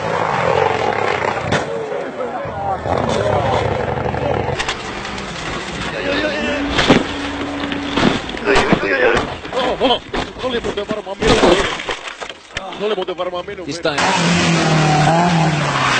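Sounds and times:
rally car engine revving: 0:00.0 - 0:09.8, 0:13.8 - 0:15.9
spectators' voices: 0:01.4 - 0:10.4.

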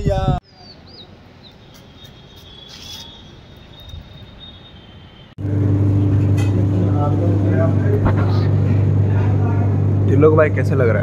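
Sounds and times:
loud low machine hum: 0:05.4 - 0:11.0.

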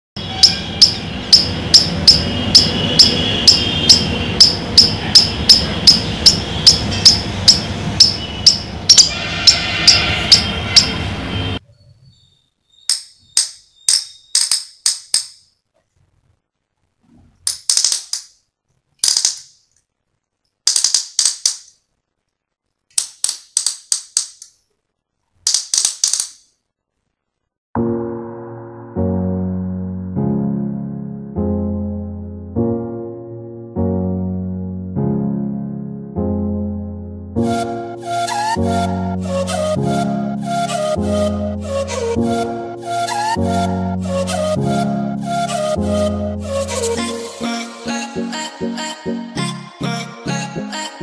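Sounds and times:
squirrel chirping: 0:00.3 - 0:10.9, 0:11.7 - 0:14.5
squeaky squirrel call gadget: 0:00.3 - 0:11.0.

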